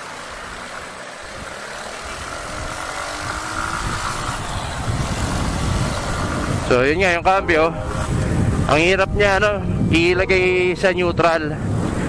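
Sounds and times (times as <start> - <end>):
motorcycle engine accelerating: 0.0 - 7.2
wind rush on microphone: 0.0 - 12.0.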